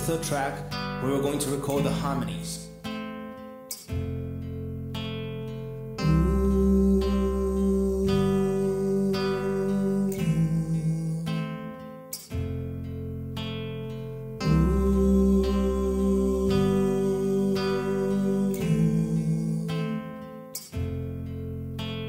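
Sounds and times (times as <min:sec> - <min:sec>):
man singing wordless harmonies: 0:00.0 - 0:02.7, 0:06.0 - 0:12.0, 0:14.4 - 0:20.8
looped acoustic guitar chords: 0:00.0 - 0:22.0
low bass line: 0:04.0 - 0:11.5, 0:12.4 - 0:20.0.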